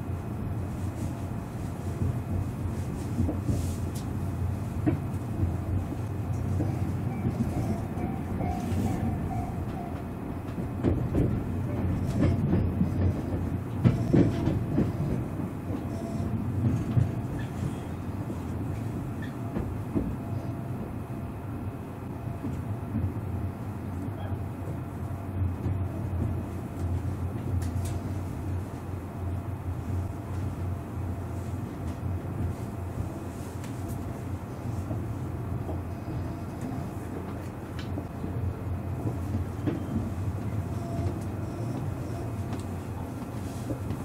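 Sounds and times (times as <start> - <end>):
train wheels rumbling on track: 0.0 - 44.0.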